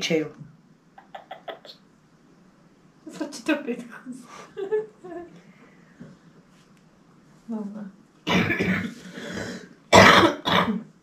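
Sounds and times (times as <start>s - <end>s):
person coughing: 8.3s - 10.9s.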